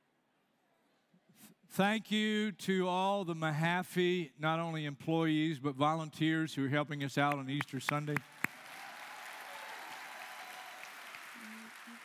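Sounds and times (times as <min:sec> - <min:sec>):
audience applauding: 0:07.3 - 0:12.0.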